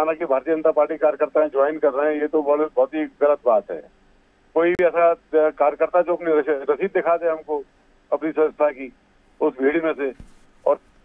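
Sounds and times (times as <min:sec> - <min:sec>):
man talking: 0:00.0 - 0:03.9, 0:04.6 - 0:10.8.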